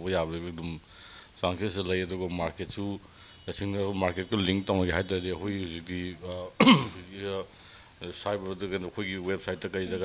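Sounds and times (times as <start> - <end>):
man speaking into a microphone: 0.0 - 0.8, 1.4 - 10.0
man clearing throat: 6.6 - 7.1.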